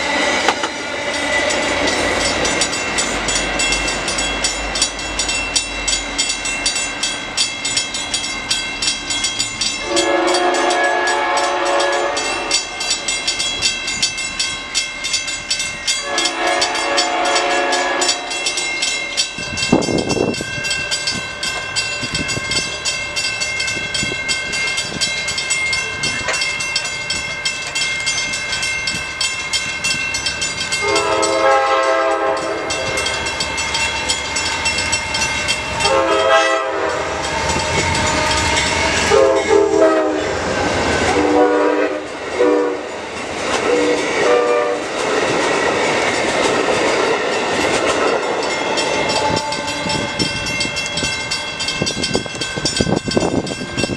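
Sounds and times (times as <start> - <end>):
train rumbling past: 0.0 - 53.9
high ringing tone: 0.9 - 40.0
train horn blasts: 9.8 - 12.7, 16.0 - 18.6, 30.8 - 33.1, 35.7 - 42.9, 43.6 - 44.9, 49.0 - 51.1.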